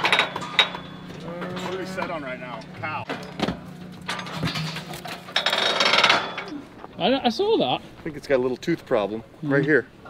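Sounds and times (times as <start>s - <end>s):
metal gate clattering: 0.0s - 6.6s.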